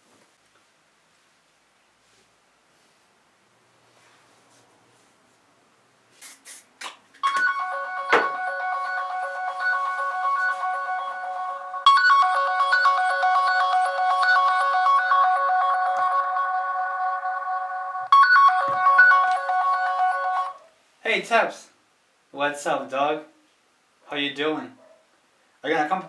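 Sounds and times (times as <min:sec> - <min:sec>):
phone ringtone melody: 0:07.2 - 0:20.6.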